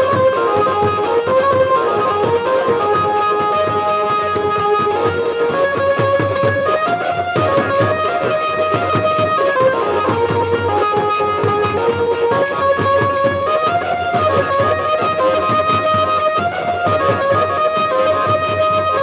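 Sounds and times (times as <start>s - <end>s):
double-headed drums beating fast: 0.0s - 19.0s
melody instrument playing tune: 0.0s - 19.0s.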